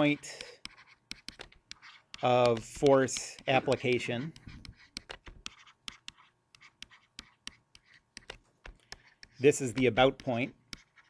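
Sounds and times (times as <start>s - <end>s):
stylus tapping on tablet screen: 0.2s - 11.0s.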